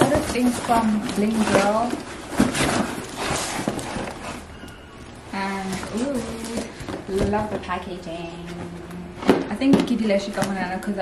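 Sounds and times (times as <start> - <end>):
cardboard rustling and scraping: 0.0 - 11.0.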